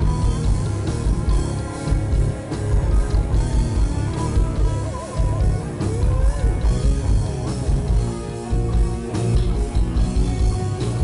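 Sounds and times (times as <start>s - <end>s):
heavy metal band playing: 0.0s - 11.0s
lead guitar melody with vibrato: 0.0s - 11.0s.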